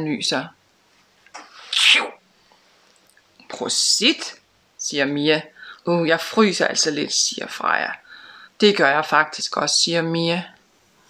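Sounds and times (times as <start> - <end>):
woman sneezing: 1.4 - 2.2.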